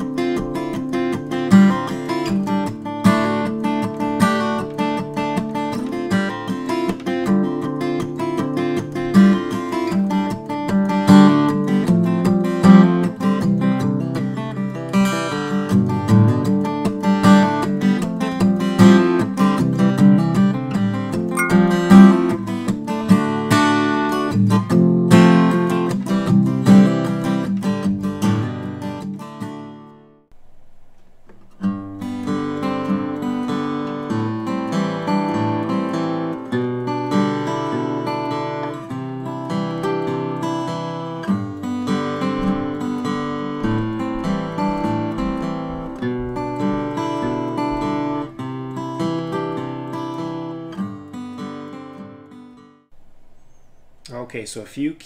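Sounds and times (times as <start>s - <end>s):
acoustic guitar picking chords: 0.0s - 55.0s.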